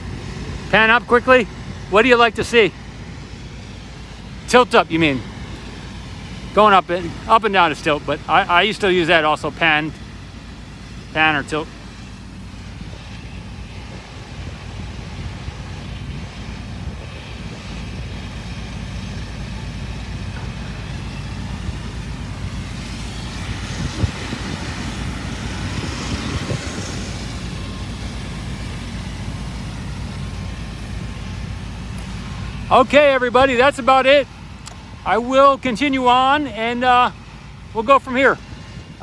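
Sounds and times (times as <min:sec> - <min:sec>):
low vehicle rumble: 0:00.0 - 0:39.0.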